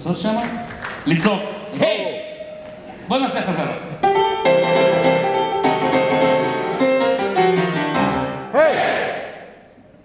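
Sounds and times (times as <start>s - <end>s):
boogie-woogie piano chords: 4.0s - 8.5s.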